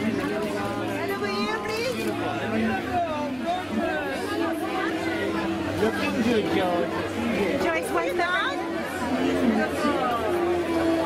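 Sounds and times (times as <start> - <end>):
music playing: 0.0 - 11.0
people talking and calling out: 0.0 - 11.0.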